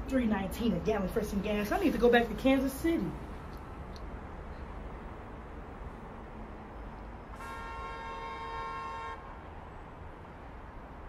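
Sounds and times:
low background noise: 0.0s - 11.0s
car horn honk: 7.4s - 9.3s.

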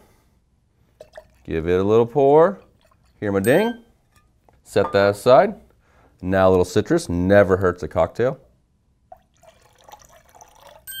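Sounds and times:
liquid trickling into metal shaker: 1.0s - 1.6s, 2.6s - 4.2s, 9.1s - 11.0s.

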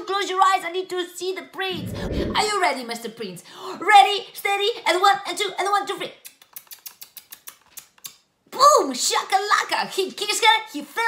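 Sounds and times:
lip kissing smacks: 6.2s - 8.2s.

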